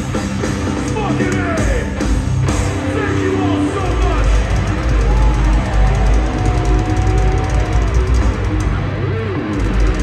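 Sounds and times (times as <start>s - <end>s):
bass and drums: 0.0s - 10.0s
distorted electric guitars: 0.0s - 10.0s.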